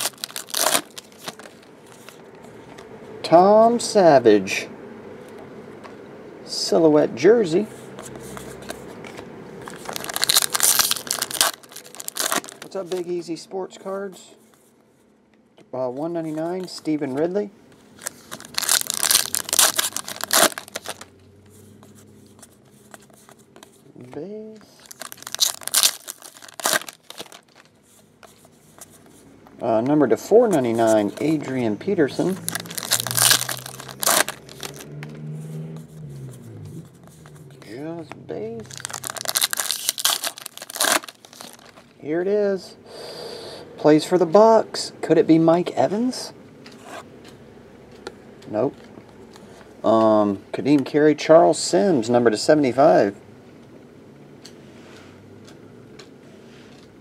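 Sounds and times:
foil wrapper tearing: 0.0s - 1.5s, 9.7s - 12.8s, 18.0s - 21.1s, 24.7s - 27.7s, 32.3s - 34.8s, 38.6s - 41.8s
foil wrapper crinkling: 0.0s - 1.7s, 9.7s - 13.1s, 18.0s - 21.1s, 24.6s - 27.8s, 32.2s - 34.8s, 38.6s - 41.9s.

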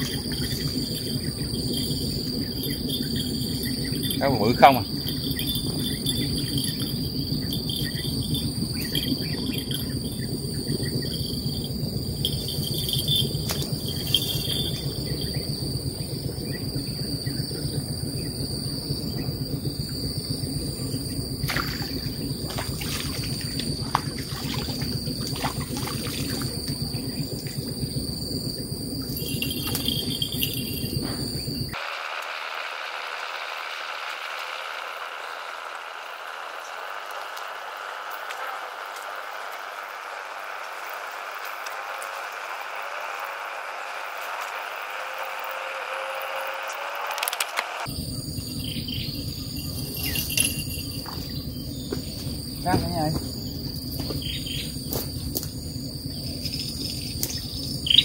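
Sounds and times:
low background rumble: 0.0s - 31.8s
insects buzzing: 0.0s - 58.0s.

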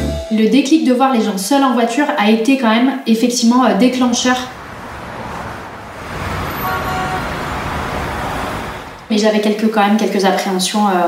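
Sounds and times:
cars passing on busy road: 3.4s - 11.0s.

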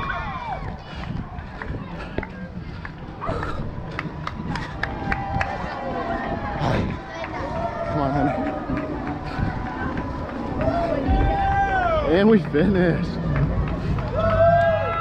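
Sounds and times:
wind on microphone: 0.0s - 12.1s
running footsteps on asphalt: 0.0s - 15.0s.

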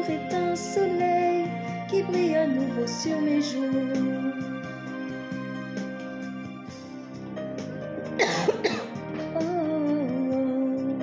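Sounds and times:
soft instrumental music: 0.0s - 11.0s
woman coughing: 8.2s - 9.0s.

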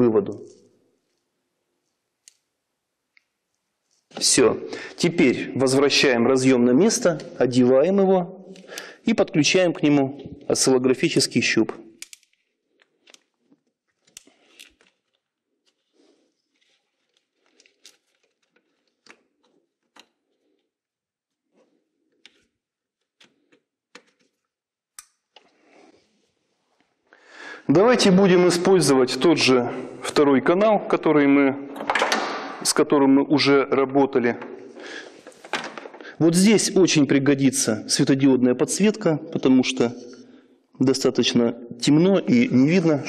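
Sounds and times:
wiring rustling: 12.0s - 27.0s.

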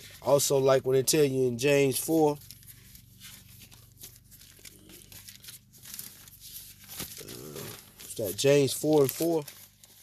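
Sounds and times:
paper pages rustling: 0.0s - 10.0s.

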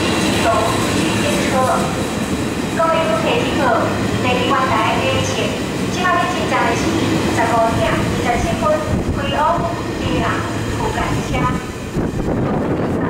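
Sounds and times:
train wheels rumbling on rails: 0.0s - 13.0s.

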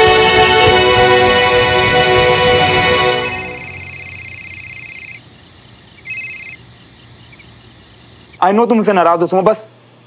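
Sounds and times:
crickets trilling: 2.6s - 10.0s
faint cricket chirping: 3.1s - 10.0s.

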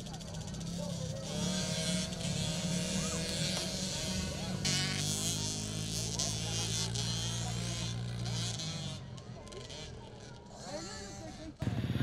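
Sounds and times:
distant dirt bikes revving: 0.0s - 12.0s.

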